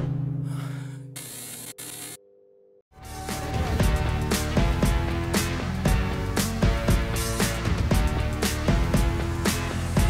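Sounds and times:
music: 0:02.9 - 0:10.0.

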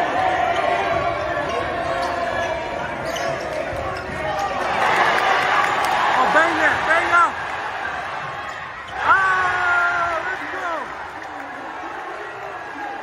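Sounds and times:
crowd chatter: 0:00.0 - 0:13.0
sneaker squeaks: 0:00.5 - 0:04.5.

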